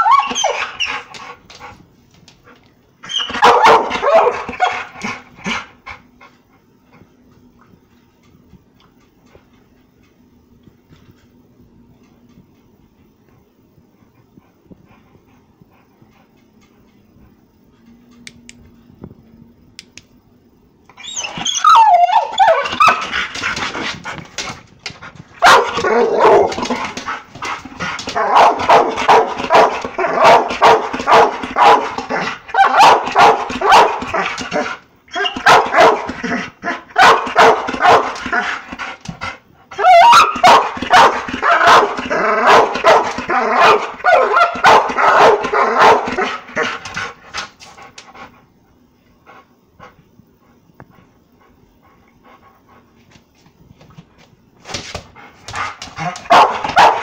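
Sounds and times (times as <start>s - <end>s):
dog barking excitedly: 3.1s - 5.7s, 21.2s - 23.9s, 25.4s - 38.7s, 39.7s - 47.1s, 55.5s - 57.0s.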